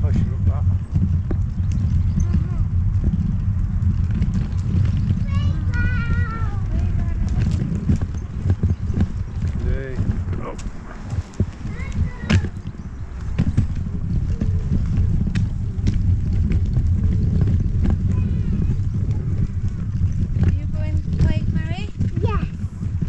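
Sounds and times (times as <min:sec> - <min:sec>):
pushchair wheels rolling: 0:00.0 - 0:23.0
wheel clicks and knocks: 0:00.1 - 0:23.0.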